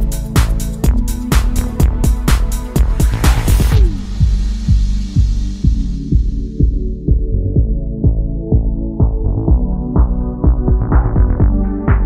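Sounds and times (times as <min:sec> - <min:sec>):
electronic music with deep beat: 0:00.0 - 0:12.0.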